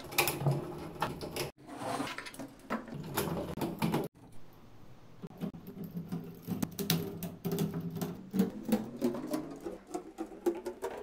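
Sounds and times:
plastic parts clicking and rattling: 0.0s - 1.5s, 5.3s - 11.0s.

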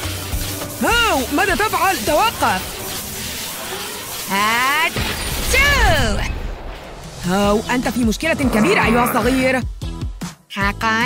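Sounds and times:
light background music: 0.0s - 4.4s, 6.9s - 11.0s
wordless vocal sounds: 7.2s - 9.7s.

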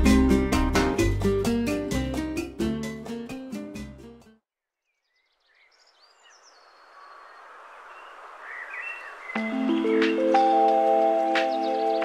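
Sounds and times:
songbird singing: 4.6s - 12.0s
outdoor background hiss: 5.1s - 12.0s.

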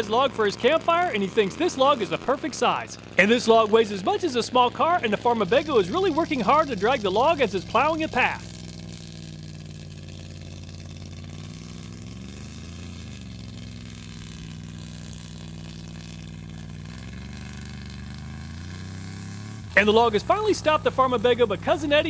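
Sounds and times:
engine working hard under load: 0.0s - 22.0s.

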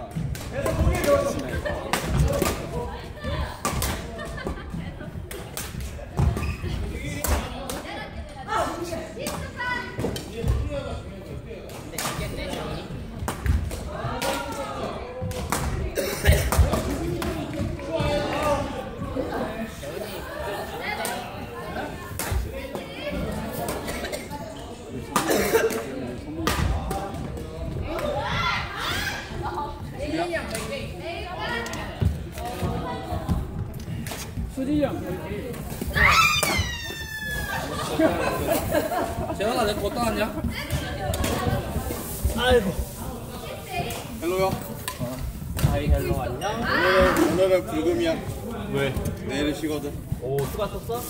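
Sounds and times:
people calling out: 35.9s - 37.9s.

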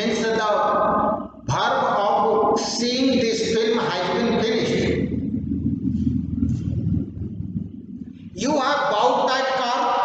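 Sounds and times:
man's voice: 0.0s - 5.2s, 8.4s - 10.0s
low fluctuating rumble: 3.1s - 9.6s.

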